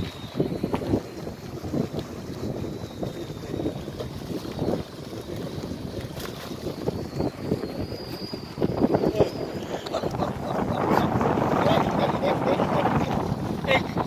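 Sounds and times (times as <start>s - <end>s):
sea water washing: 0.0s - 14.0s
wind on microphone: 0.0s - 14.0s.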